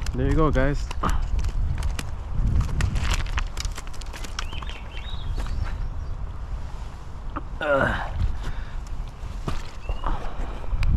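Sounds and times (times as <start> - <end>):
footsteps on loose cobbles: 0.0 - 5.8, 8.5 - 10.5.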